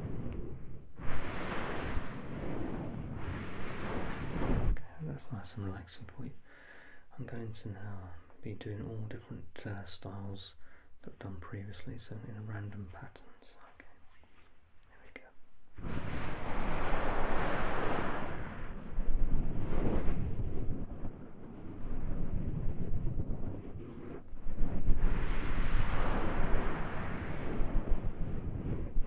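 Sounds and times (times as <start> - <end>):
close rubbing friction on microphone: 0.0 - 6.2, 12.7 - 14.6, 15.8 - 29.0.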